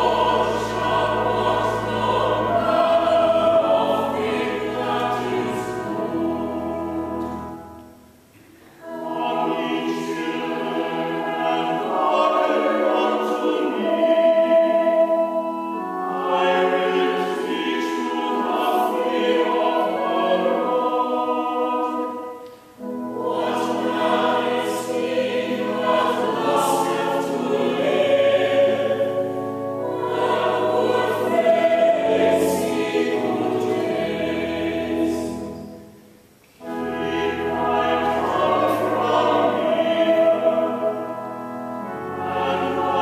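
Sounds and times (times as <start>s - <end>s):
church choir chanting: 0.0s - 8.0s, 8.8s - 43.0s
low sustained organ notes: 0.0s - 43.0s.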